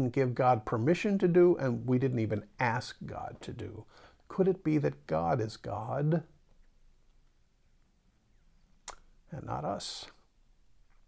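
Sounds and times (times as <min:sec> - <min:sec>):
mouth click: 0:08.8 - 0:09.1.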